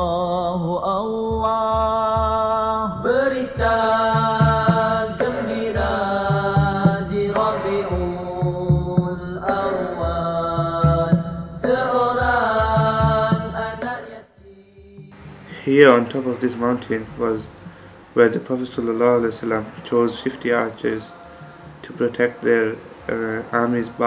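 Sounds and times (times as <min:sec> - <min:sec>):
devotional chant: 0:00.0 - 0:24.0
steady low beat: 0:01.4 - 0:13.8, 0:14.4 - 0:24.0.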